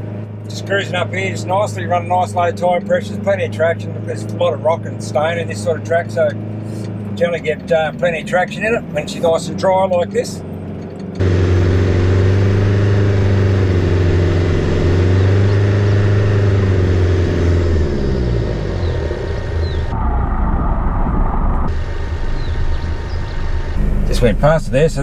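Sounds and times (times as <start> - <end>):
vehicle engine pulling uphill: 0.0 - 25.0.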